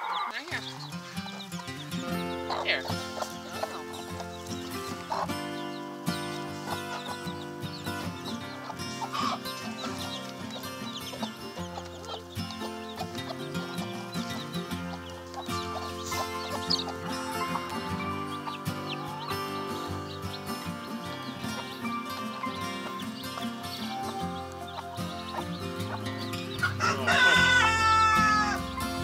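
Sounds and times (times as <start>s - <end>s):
chicks peeping: 0.0s - 29.0s
hen clucking: 0.0s - 29.0s
slow held chords music: 1.0s - 29.0s.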